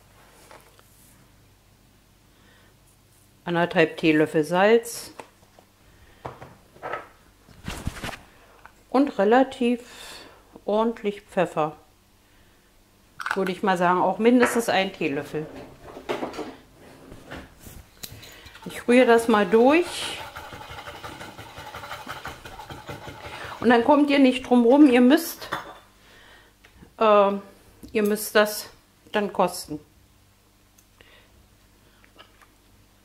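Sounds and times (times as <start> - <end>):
spoon scraping a jug: 18.2 - 23.8.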